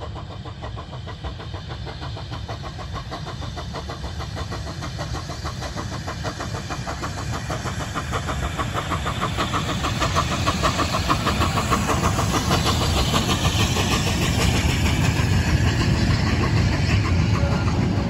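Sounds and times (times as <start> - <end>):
steam locomotive exhaust chuffs: 0.0 - 18.0.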